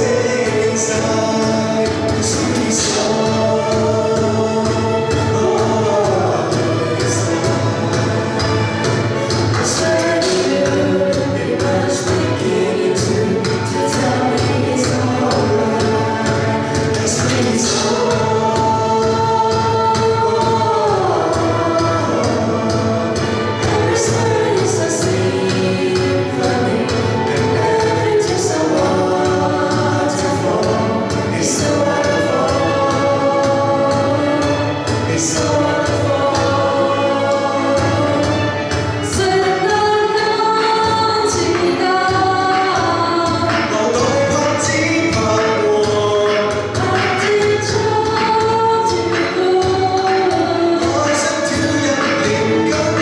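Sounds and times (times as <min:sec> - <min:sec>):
string ensemble: 0:00.0 - 0:53.0
vocal group singing: 0:00.0 - 0:53.0.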